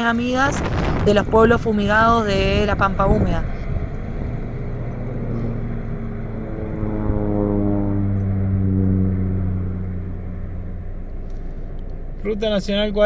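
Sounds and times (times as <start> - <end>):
propeller airplane flying past: 0.0 - 13.0.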